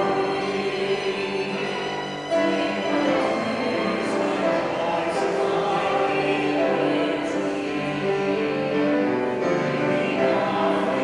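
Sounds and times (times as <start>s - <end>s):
woman and man singing sacred song: 0.0s - 8.6s, 9.6s - 11.0s.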